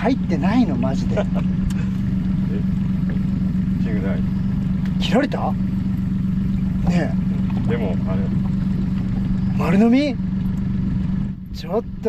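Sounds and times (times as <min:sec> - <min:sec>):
outboard motor idling: 0:00.0 - 0:12.0.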